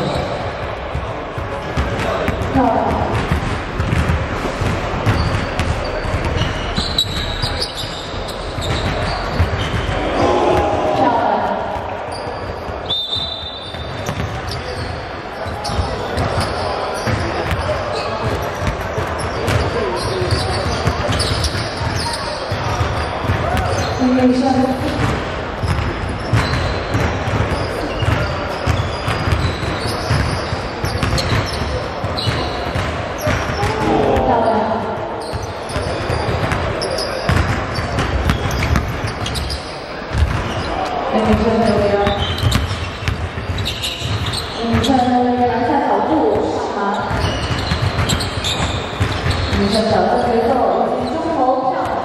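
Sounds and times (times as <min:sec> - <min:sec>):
basketballs bouncing on wooden floor: 0:00.0 - 0:52.0
voices in large hall: 0:00.0 - 0:52.0.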